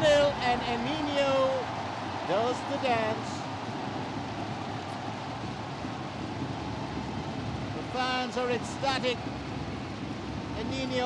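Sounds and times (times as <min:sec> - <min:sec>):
crowd clapping: 0:00.0 - 0:11.0
stadium crowd cheering: 0:00.0 - 0:11.0.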